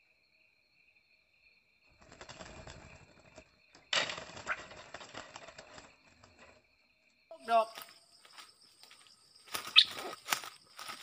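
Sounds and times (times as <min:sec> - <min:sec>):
high insect drone: 0:00.0 - 0:11.0
bird wings flapping: 0:02.0 - 0:06.6, 0:09.4 - 0:11.0.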